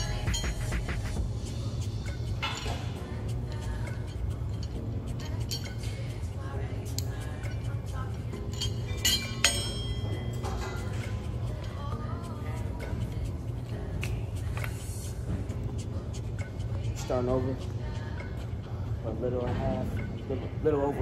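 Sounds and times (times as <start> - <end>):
background music with beat: 0.0 - 20.4.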